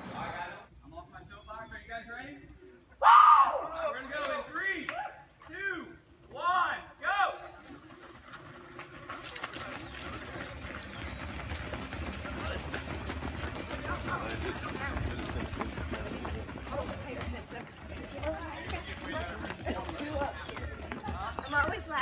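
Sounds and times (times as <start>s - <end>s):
runners' footsteps on asphalt: 7.0s - 22.0s.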